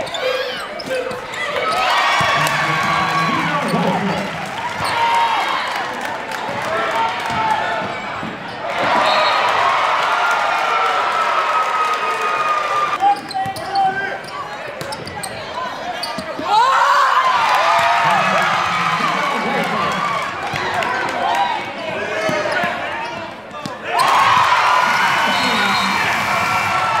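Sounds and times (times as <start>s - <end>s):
sneakers squeaking: 0.0s - 5.2s, 13.0s - 16.7s, 21.6s - 26.2s
crowd voices in a gym: 0.0s - 27.0s.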